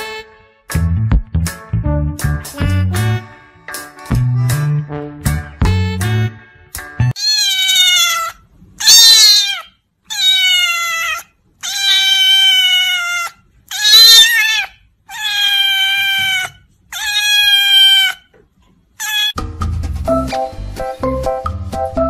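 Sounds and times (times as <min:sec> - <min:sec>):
music: 0:00.0 - 0:07.2, 0:19.4 - 0:22.0
cat meowing loudly: 0:07.2 - 0:18.3, 0:19.0 - 0:19.4.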